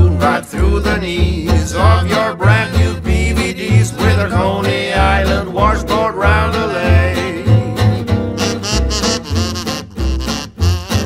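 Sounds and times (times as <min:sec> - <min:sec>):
voices singing in harmony: 0:00.0 - 0:08.1
strummed guitar: 0:00.0 - 0:11.0
walking double bass: 0:00.0 - 0:11.0.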